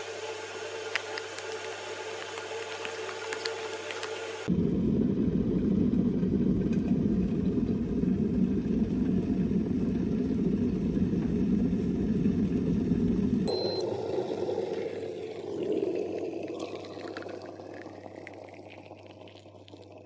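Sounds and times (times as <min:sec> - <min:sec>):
kettle boiling rumble: 0:00.0 - 0:20.0
short high kettle beep: 0:13.5 - 0:14.0.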